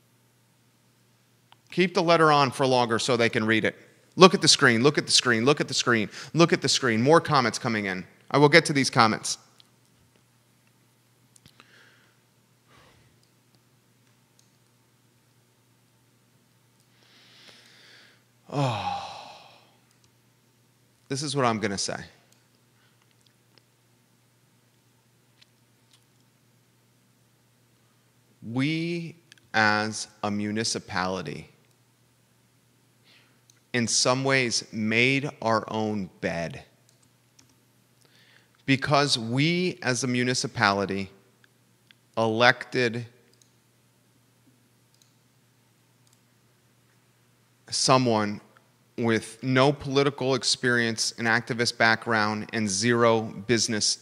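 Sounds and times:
faint room hiss: 0.0 - 54.0
man sighing: 17.6 - 19.8.

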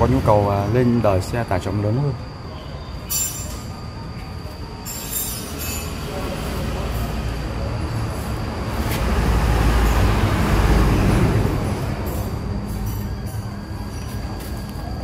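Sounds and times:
passing vehicle rumble: 6.0 - 13.9.

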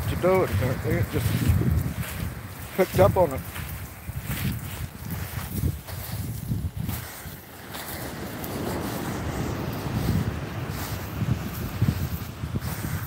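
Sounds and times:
surf washing on shore: 0.0 - 13.0
wind buffeting microphone: 0.0 - 13.0.

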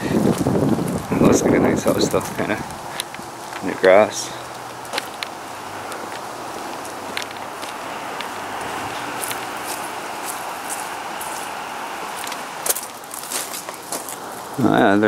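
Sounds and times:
light footsteps: 0.0 - 14.8
car passing tyre and road noise: 0.0 - 15.0.

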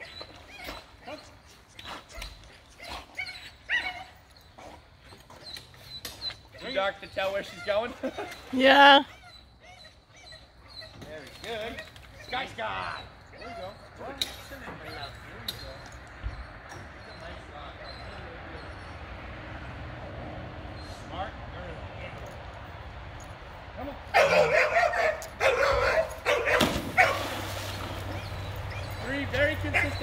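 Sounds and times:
dog barking: 24.1 - 27.4, 29.7 - 30.0
dog splashing into water: 26.4 - 28.5.

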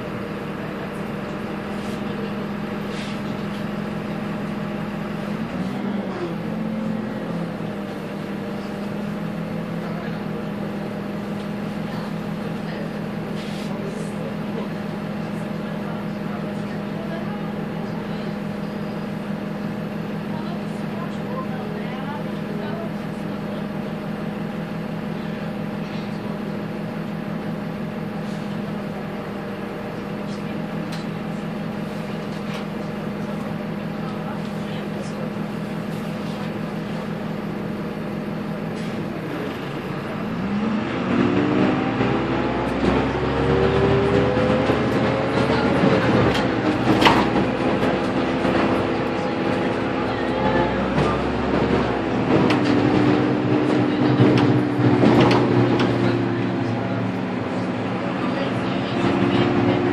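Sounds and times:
bus diesel engine: 0.0 - 59.9.

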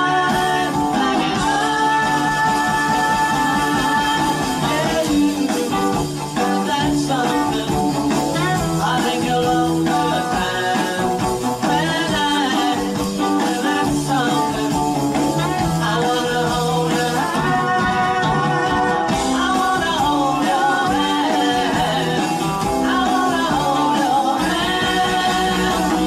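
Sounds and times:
drums: 0.0 - 26.0
electric bass: 0.0 - 26.0
electric guitars: 0.0 - 26.0
sung vocals: 0.0 - 26.0.

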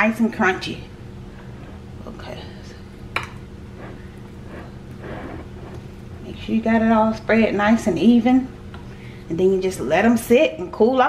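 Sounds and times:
steady low hum: 0.0 - 11.0
spoon scraping sticky cereal: 3.7 - 6.0.

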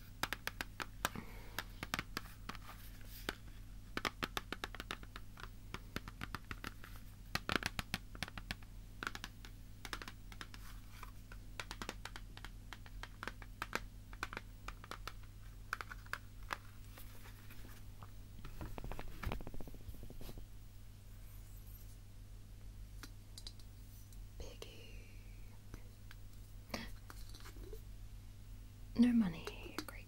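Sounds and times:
fingers tapping and scratching: 0.0 - 17.6, 18.4 - 20.4, 29.3 - 30.0
steady low hum: 0.0 - 30.0.

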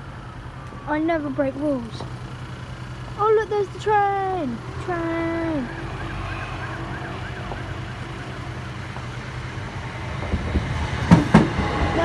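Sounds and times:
train rumble: 0.0 - 12.0
level crossing alarm yelping: 3.9 - 10.0
train knocks and clatter: 10.1 - 12.0.

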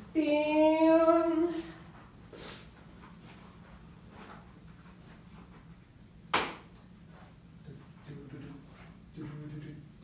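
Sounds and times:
faint low hum: 0.0 - 10.0
sharp knock: 6.3 - 6.7.

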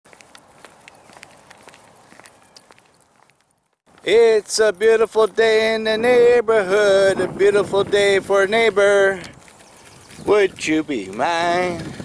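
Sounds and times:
footsteps on concrete: 0.1 - 5.4, 7.9 - 12.0.

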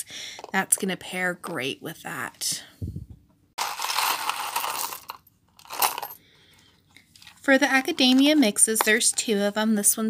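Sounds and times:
beads clattering onto a table: 3.6 - 6.2.

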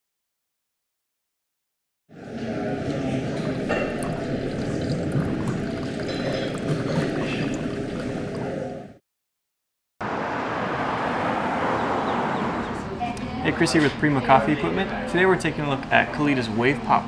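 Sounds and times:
water pouring from kettle: 3.2 - 8.7.

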